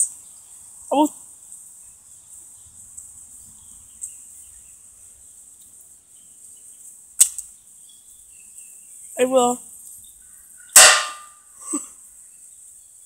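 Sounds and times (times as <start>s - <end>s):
sharp crack: 7.2s - 7.5s, 10.8s - 11.3s.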